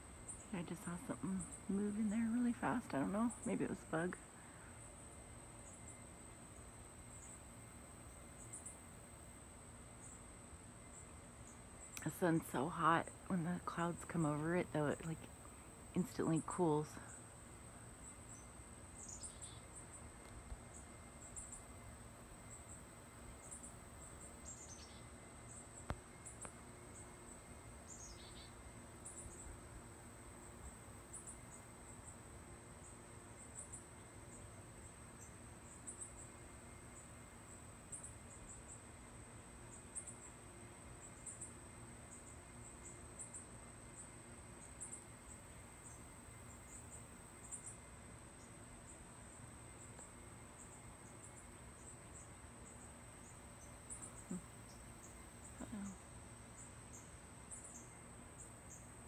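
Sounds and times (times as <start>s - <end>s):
insect chorus trilling: 0.1s - 59.0s.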